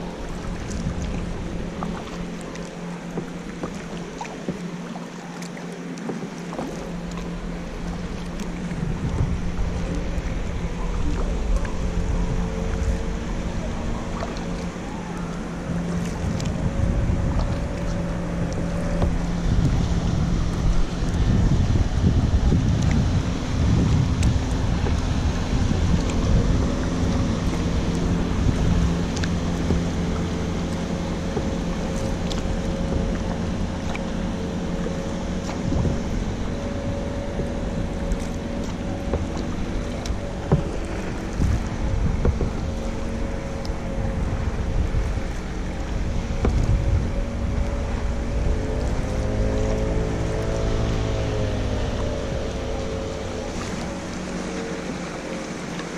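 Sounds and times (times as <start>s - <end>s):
wind buffeting microphone: 0.0s - 4.8s, 6.1s - 55.9s
distant motorboat engine hum: 0.0s - 55.9s
water lapping at kayak: 0.0s - 55.9s.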